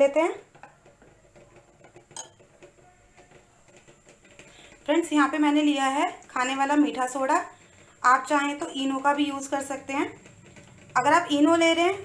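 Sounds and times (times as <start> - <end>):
spoon scraping in batter: 0.0 - 12.0
spoon clinking against glass: 2.1 - 2.4.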